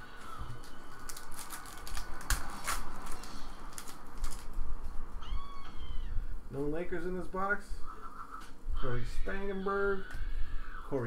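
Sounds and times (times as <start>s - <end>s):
cards and foil wrapper crinkling: 0.1s - 4.6s.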